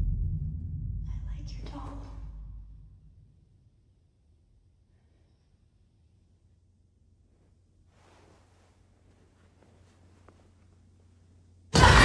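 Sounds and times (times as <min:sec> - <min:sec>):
deep low rumble: 0:00.0 - 0:12.0
whispered voice: 0:01.1 - 0:02.4.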